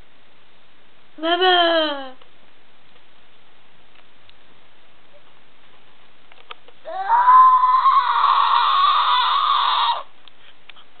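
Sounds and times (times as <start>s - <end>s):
girl screaming: 6.9s - 10.1s.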